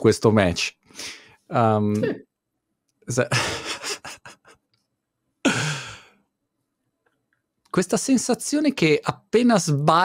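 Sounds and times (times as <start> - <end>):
man laughing: 3.1 - 4.5, 5.5 - 6.0
loud voiced sigh: 5.5 - 6.0.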